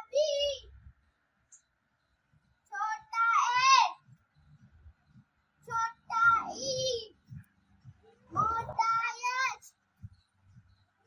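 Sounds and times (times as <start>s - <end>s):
faint low thuds: 4.0s - 9.2s, 9.8s - 10.9s
girl chanting in sing-song: 5.6s - 7.3s, 8.3s - 9.7s.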